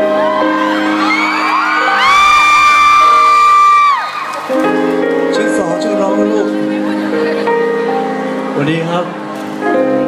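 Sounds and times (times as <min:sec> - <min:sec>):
fans screaming: 0:00.0 - 0:04.7
live piano: 0:00.0 - 0:10.0.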